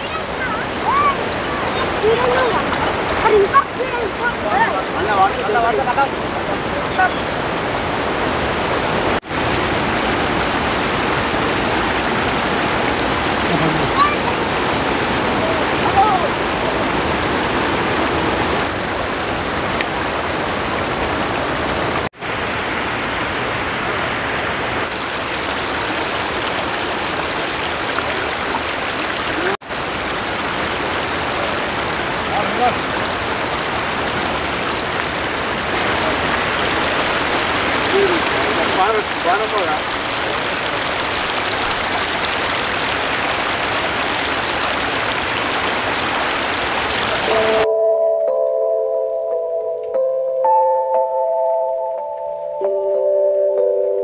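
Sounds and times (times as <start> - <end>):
water rushing: 0.0 - 47.7.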